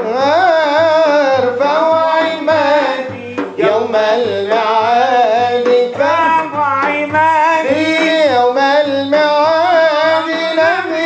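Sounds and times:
frame drums beating: 0:00.0 - 0:11.0
man singing a hymn: 0:00.0 - 0:11.0.

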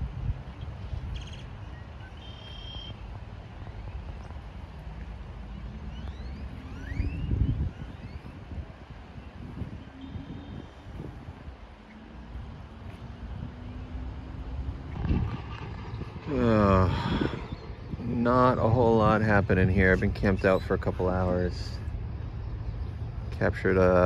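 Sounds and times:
wind rumble on microphone: 0:00.0 - 0:02.2, 0:02.9 - 0:24.0
distant engine hum: 0:00.0 - 0:24.0
bird chirps: 0:00.6 - 0:03.0.

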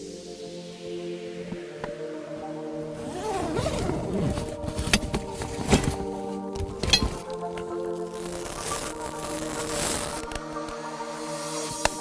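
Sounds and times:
background music with sustained tones: 0:00.0 - 0:12.0
fabric cover rustling: 0:03.0 - 0:10.4.

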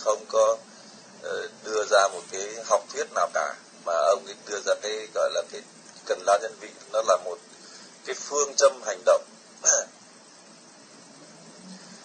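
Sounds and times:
low steady line hiss: 0:00.0 - 0:12.0
man's voice: 0:01.2 - 0:07.4, 0:08.1 - 0:09.9.

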